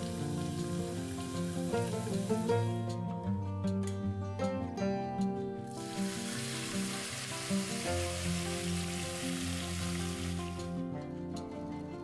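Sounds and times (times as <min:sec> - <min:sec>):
hot oil sizzling: 0:00.0 - 0:02.8, 0:05.7 - 0:10.7
guitar music: 0:00.0 - 0:12.0.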